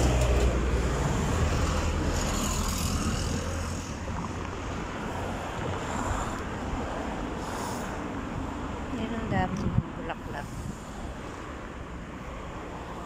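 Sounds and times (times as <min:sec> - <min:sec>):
motor vehicle rumble: 0:00.0 - 0:13.0
street noise: 0:00.0 - 0:13.0.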